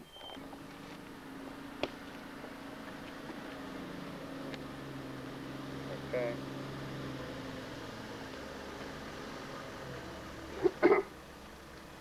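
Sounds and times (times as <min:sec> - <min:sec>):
truck engine drone: 0:00.0 - 0:12.0.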